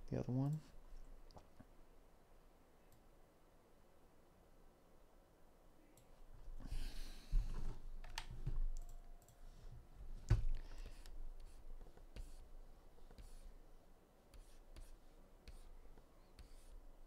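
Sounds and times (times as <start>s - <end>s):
computer keys clicking: 8.0s - 9.4s
soft desk thumps: 10.2s - 10.6s.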